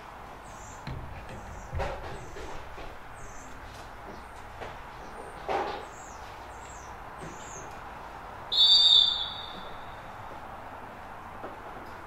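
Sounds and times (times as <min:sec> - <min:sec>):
referee's whistle blast: 0:08.5 - 0:09.9.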